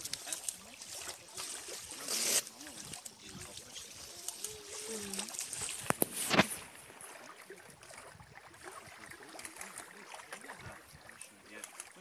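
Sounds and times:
outdoor noise: 0.0s - 12.0s
waves lapping on rocky shore: 0.0s - 12.0s.

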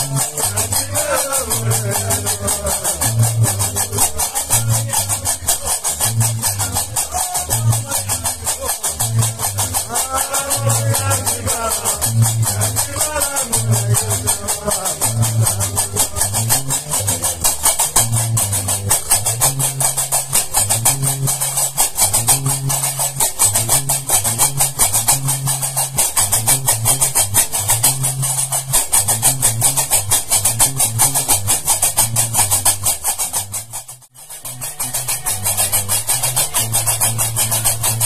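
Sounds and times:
bass lute riff: 0.0s - 38.0s.

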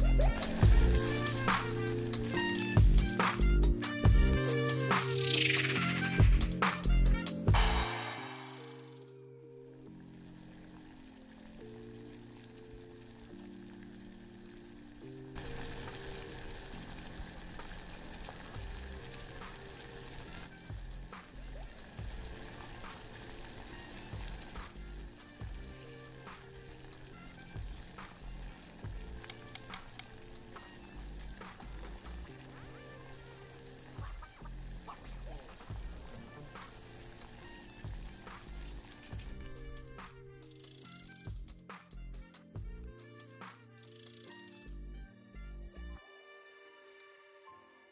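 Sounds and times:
rice boiling in water: 0.0s - 5.5s, 9.7s - 40.2s
background music with bass: 0.0s - 9.2s, 18.6s - 46.0s.

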